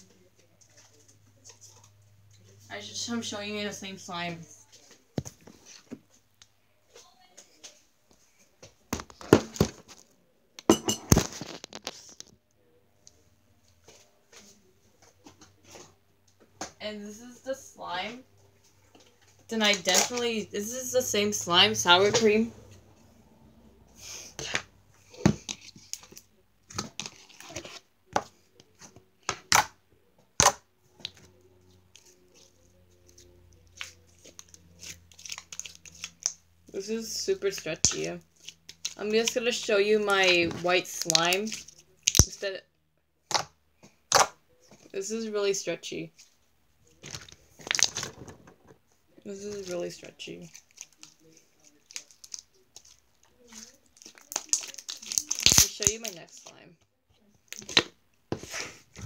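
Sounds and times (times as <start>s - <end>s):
slime popping and tearing: 41.0s - 42.4s, 47.0s - 48.1s, 51.8s - 56.2s.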